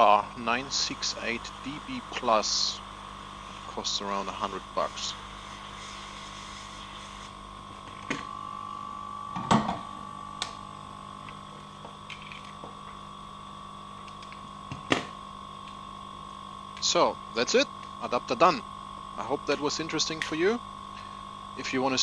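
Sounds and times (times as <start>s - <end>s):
hot-air gun blower humming: 0.0s - 22.0s.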